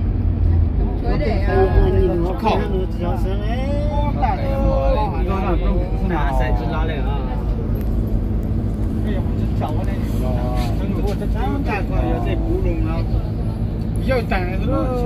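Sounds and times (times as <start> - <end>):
minibus engine and tyres droning: 0.0 - 15.0
passengers talking: 0.0 - 15.0.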